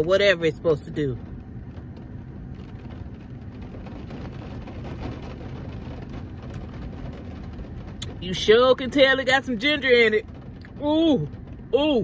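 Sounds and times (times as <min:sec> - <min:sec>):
low steady hum: 0:00.0 - 0:12.0
rain on a car: 0:00.0 - 0:12.0.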